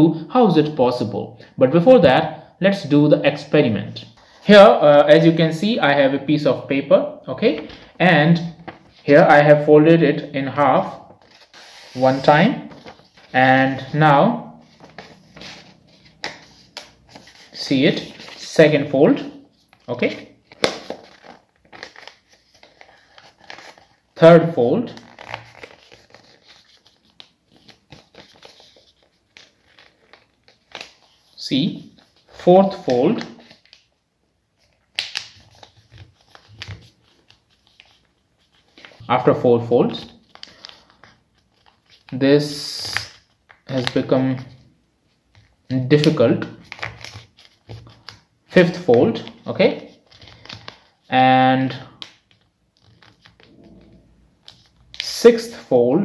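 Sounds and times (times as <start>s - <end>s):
paper folding and crinkling: 7.4s - 9.3s, 10.7s - 14.0s, 14.6s - 18.6s, 19.2s - 24.2s, 24.9s - 33.9s, 34.5s - 39.1s, 39.8s - 42.2s, 42.8s - 51.1s, 51.7s - 55.1s.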